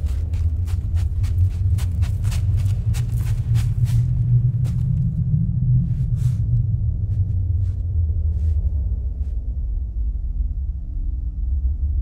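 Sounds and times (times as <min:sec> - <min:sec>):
deep low rumble: 0:00.0 - 0:12.0.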